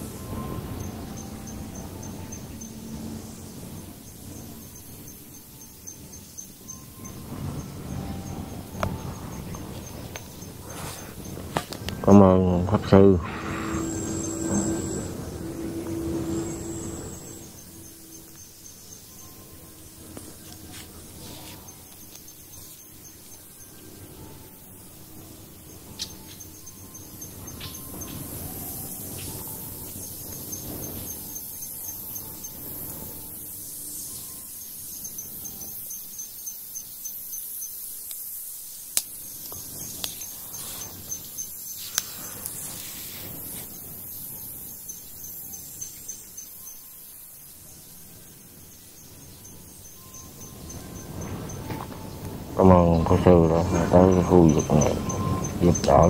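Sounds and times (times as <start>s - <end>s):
insects chirping in trills: 0.0s - 56.0s
steady hiss: 0.0s - 56.0s.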